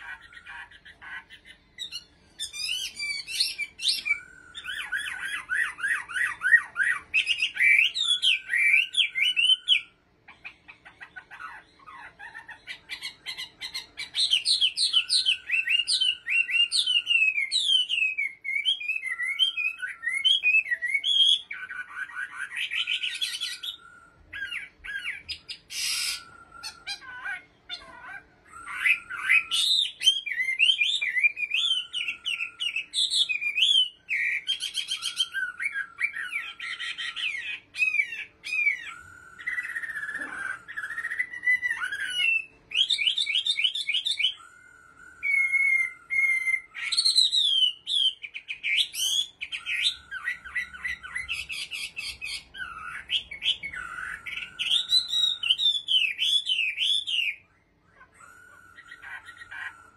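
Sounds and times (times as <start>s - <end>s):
bird singing whistled phrases and trills: 0.0s - 59.9s.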